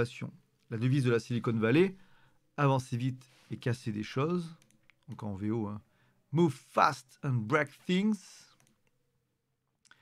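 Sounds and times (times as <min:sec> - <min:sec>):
person speaking: 0:00.0 - 0:08.9.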